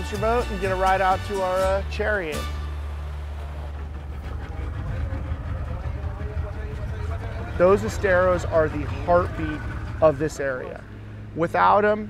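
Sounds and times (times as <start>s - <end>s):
boat motor running: 0.0s - 12.0s
wind: 0.0s - 12.0s
water noise: 1.9s - 11.7s
faint voices: 3.1s - 11.4s.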